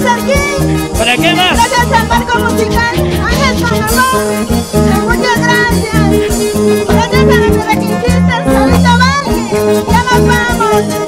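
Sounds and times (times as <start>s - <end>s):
guitar lead melody: 0.0s - 11.0s
latin dance band music: 0.0s - 11.0s.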